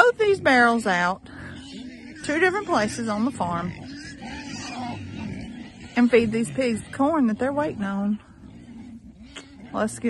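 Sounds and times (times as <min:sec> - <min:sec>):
young pigs grunting: 0:00.0 - 0:10.0.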